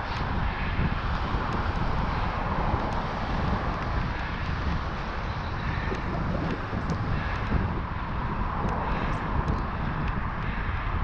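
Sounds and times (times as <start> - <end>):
bike tyres on wet pavement: 0.0 - 11.0
wind buffeting microphone: 0.0 - 11.0.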